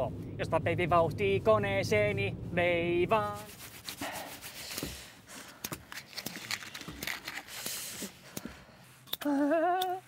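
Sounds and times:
firewood being handled: 3.3s - 8.6s.

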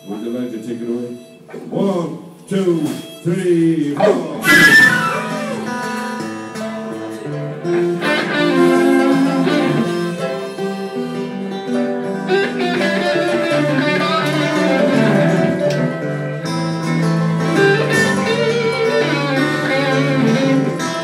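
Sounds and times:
blues band playing: 0.0s - 21.0s.

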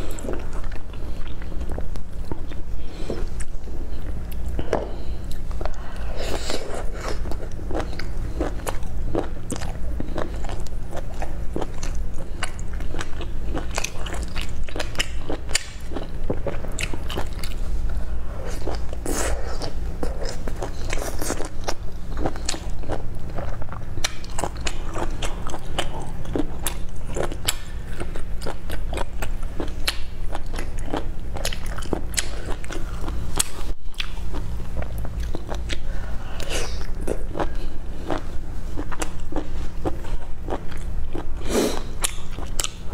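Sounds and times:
person chewing with mouth clicks: 0.0s - 17.6s, 18.4s - 42.9s
steady low hum: 0.0s - 42.9s.

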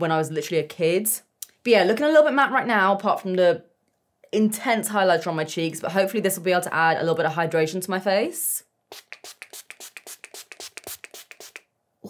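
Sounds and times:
spray bottle hissing pumps: 8.9s - 11.7s.

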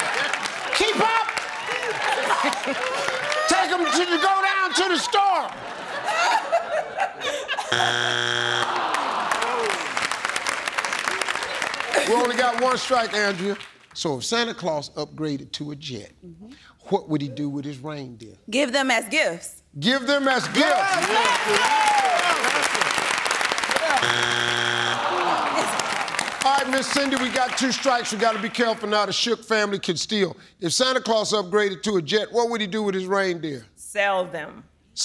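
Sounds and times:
audience applause: 0.0s - 5.6s, 7.7s - 13.9s, 20.3s - 28.9s
crowd noise: 0.0s - 12.6s, 23.7s - 27.5s
game show strike buzzer: 7.7s - 9.1s, 23.8s - 25.8s.

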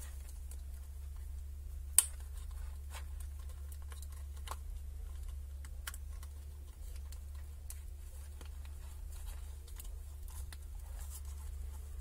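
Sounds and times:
steady low hum: 0.0s - 12.0s
wires and small parts handled: 0.0s - 12.0s.

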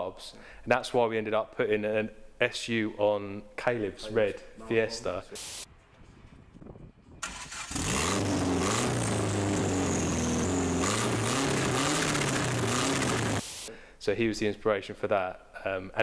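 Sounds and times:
car engine starting and revving: 7.2s - 13.4s.

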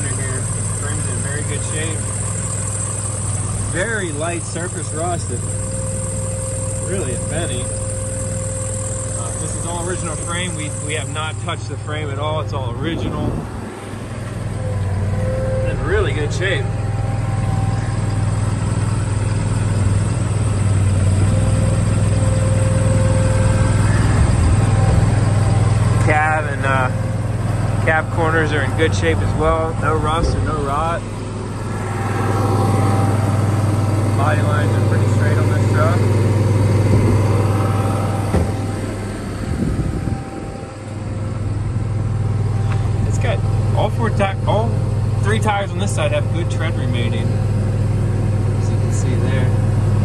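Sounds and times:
diesel engine idling: 0.0s - 50.0s.

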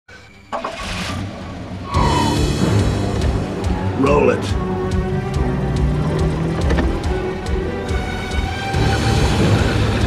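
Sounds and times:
car engine and road noise: 0.1s - 10.0s.

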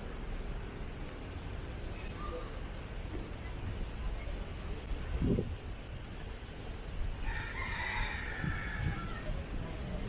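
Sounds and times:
low street rumble: 0.0s - 10.0s
rooster crowing: 7.2s - 9.4s.

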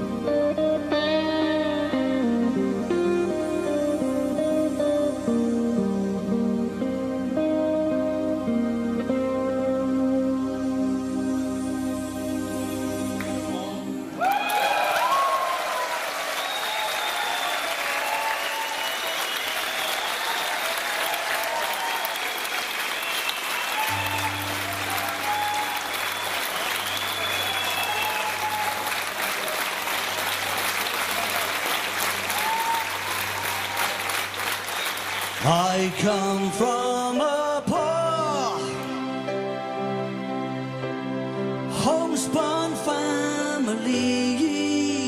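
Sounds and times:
audience applauding and cheering: 14.1s - 36.8s
band playing: 23.8s - 43.8s.

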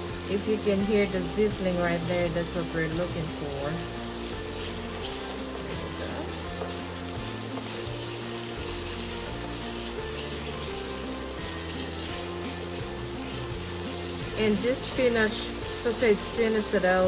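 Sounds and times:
onion sizzling in frying pan: 0.0s - 17.0s
slow low background music: 0.0s - 17.0s.

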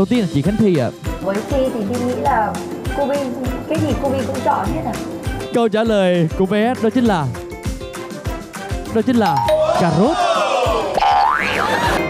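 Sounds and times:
background music: 0.0s - 12.0s
comic boing: 10.9s - 12.0s.

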